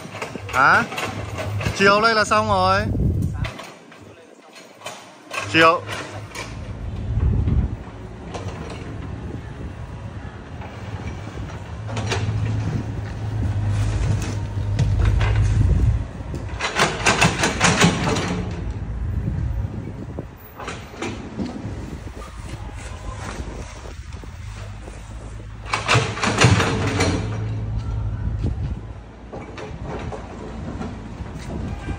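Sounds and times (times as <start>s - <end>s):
excavator engine droning: 5.3s - 31.7s
soil and rubble scraping: 10.4s - 18.7s.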